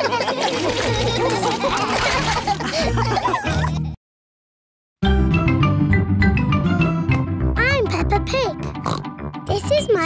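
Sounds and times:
bright cartoon theme music: 5.0s - 10.0s
child speaking: 7.6s - 8.7s, 9.5s - 10.0s
child pig snort: 8.8s - 9.1s.

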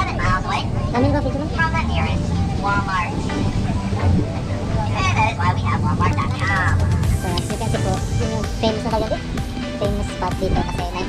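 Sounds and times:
people talking: 0.0s - 9.2s, 9.8s - 11.0s
tram rumbling: 0.0s - 11.0s.

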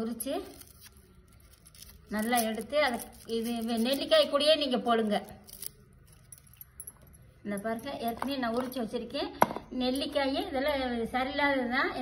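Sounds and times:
metal bangles clinking: 0.0s - 11.1s
papery skins rustling and crackling: 0.3s - 4.3s.

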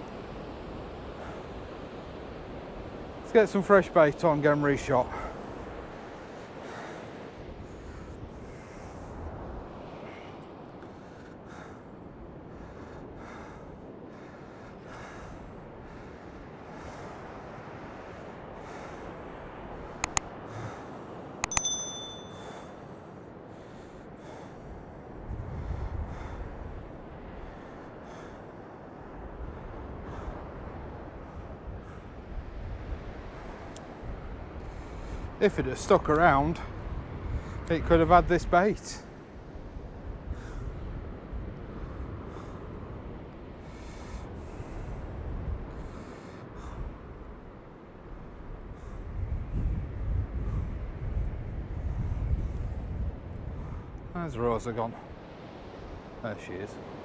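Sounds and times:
wind rumble on microphone: 0.0s - 57.0s
sharp clicks: 20.0s - 20.3s
bell ding: 21.4s - 22.7s.

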